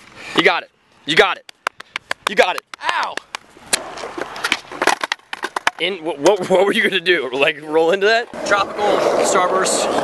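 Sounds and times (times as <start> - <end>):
skateboard clacks: 1.4 - 6.4
skateboard rolling on concrete: 1.7 - 10.0.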